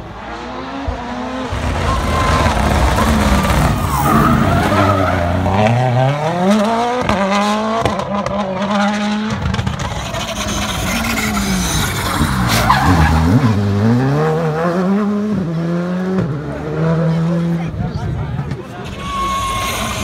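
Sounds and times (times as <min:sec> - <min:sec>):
rally car downshifting with crack: 0:00.0 - 0:20.0
rally car engine revving: 0:00.0 - 0:20.0.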